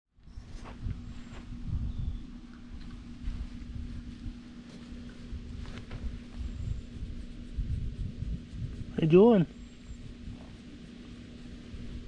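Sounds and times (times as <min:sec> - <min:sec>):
faint low hum: 0:00.2 - 0:12.0
wind rumbling on microphone: 0:00.2 - 0:12.0.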